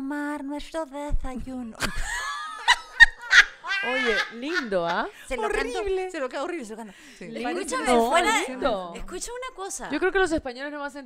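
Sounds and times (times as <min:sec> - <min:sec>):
woman laughing: 0:01.8 - 0:06.0.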